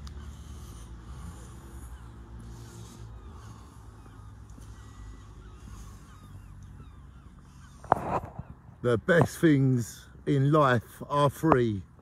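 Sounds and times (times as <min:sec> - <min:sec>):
distant birds calling: 0:00.0 - 0:12.0.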